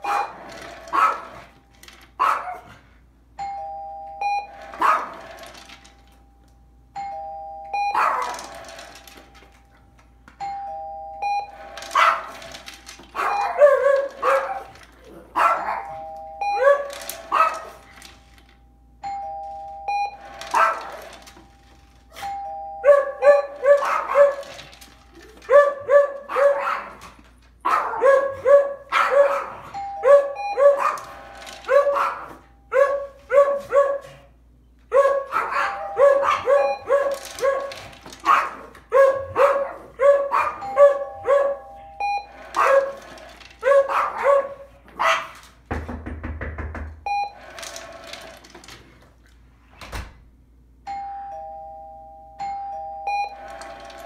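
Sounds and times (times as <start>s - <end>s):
dogs barking: 0.0s - 1.5s, 2.2s - 2.9s, 4.6s - 5.4s, 7.8s - 8.6s, 11.8s - 17.9s, 20.3s - 21.2s, 22.2s - 24.8s, 25.4s - 45.6s
two-tone doorbell chime: 3.4s - 4.7s, 6.2s - 8.2s, 10.3s - 11.8s, 15.8s - 16.9s, 18.7s - 20.5s, 21.6s - 23.7s, 29.7s - 30.8s, 40.6s - 42.5s, 50.8s - 54.0s.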